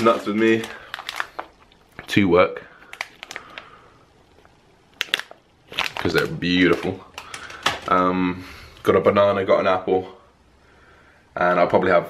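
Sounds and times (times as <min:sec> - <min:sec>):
nuts shifting in bag: 0:00.0 - 0:02.1, 0:05.0 - 0:07.9
plastic bag crinkling: 0:00.0 - 0:08.0.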